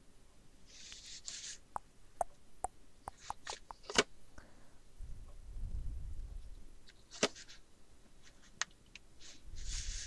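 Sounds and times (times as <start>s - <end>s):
sharp tap: 3.1s - 4.0s.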